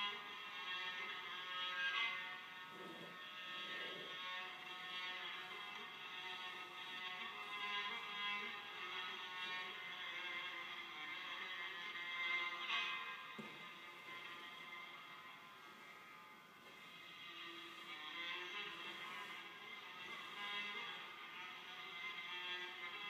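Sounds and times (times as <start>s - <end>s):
music of sustained tones: 0.0s - 22.9s.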